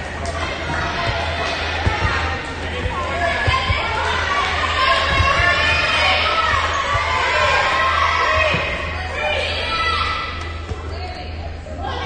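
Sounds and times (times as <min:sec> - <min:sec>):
chatter of players and spectators: 0:00.0 - 0:12.0
volleyball thump: 0:00.8 - 0:05.9.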